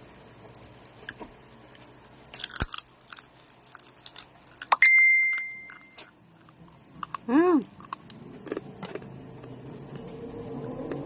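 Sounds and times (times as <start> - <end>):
crunchy chewing: 0.4 - 11.0
ringing ding: 4.8 - 6.0.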